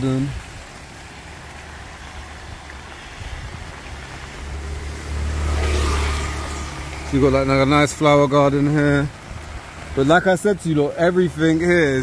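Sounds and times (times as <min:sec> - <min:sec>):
tyres hissing on wet road: 0:00.0 - 0:12.0
vehicle engine rumble: 0:00.0 - 0:12.0.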